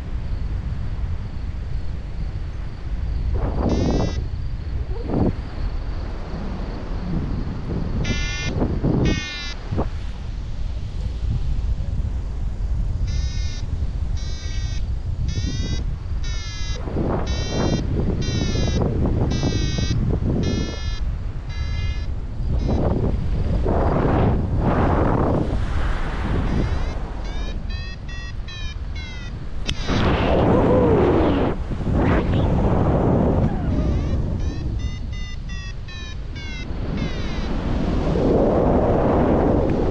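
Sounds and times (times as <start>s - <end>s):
wind on microphone: 0.0s - 39.9s
variometer beeping: 3.6s - 4.2s, 8.0s - 9.6s, 13.1s - 23.0s, 26.4s - 31.6s, 33.5s - 37.8s.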